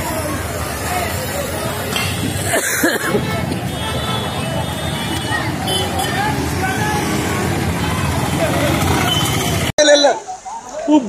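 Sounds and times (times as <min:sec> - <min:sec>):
scooters and motorbikes passing: 0:00.0 - 0:09.7
people's voices: 0:00.0 - 0:11.0.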